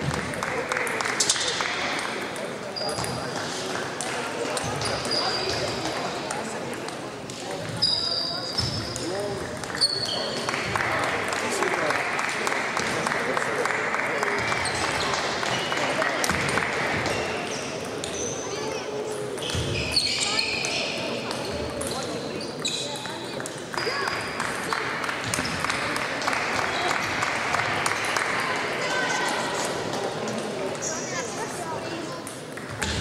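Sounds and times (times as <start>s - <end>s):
murmur of voices: 0.0s - 33.0s.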